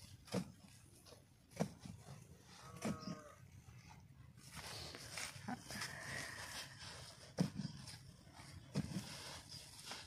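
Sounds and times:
shovel scraping sandy soil: 4.4s - 10.0s.

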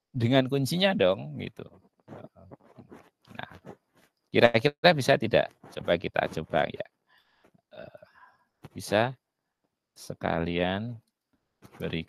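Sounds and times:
mouth and breath sounds: 2.0s - 4.0s.

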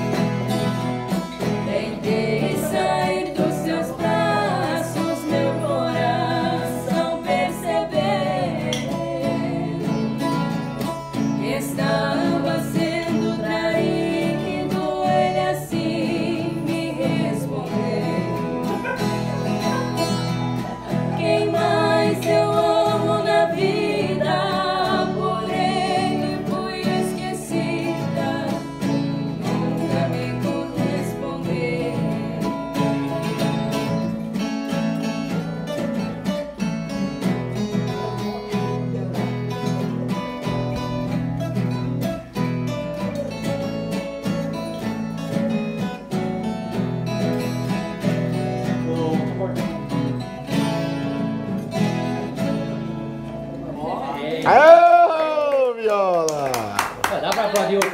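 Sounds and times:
viola and acoustic guitar playing: 0.0s - 54.7s
two women singing in duet: 1.4s - 19.8s, 20.6s - 33.7s.

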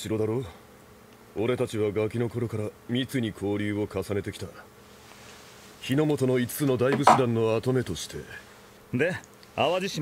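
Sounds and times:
man speaking: 6.6s - 7.6s.

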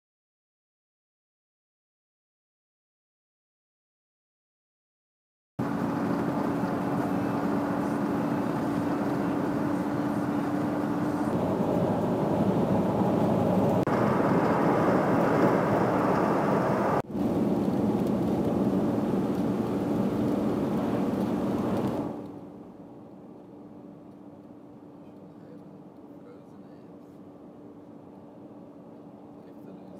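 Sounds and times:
car road and engine noise: 5.6s - 29.9s.

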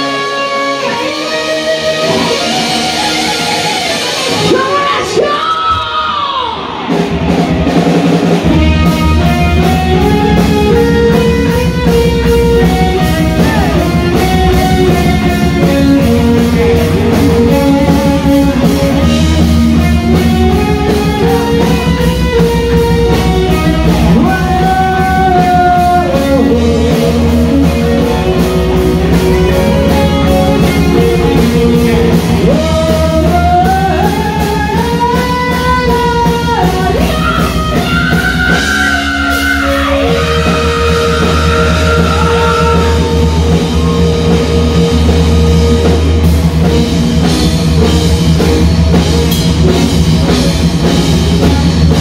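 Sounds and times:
heavy metal band playing live: 0.0s - 52.0s
melodic lead guitar line: 0.0s - 52.0s.

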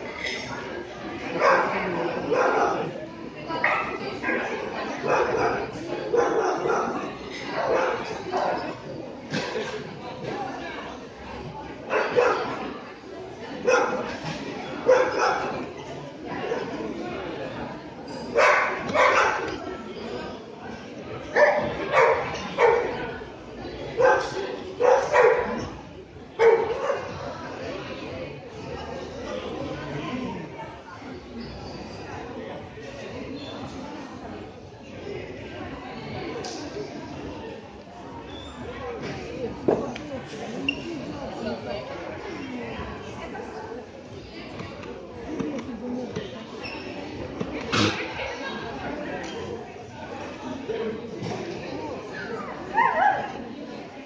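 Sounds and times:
people talking in a hall: 0.0s - 54.0s.

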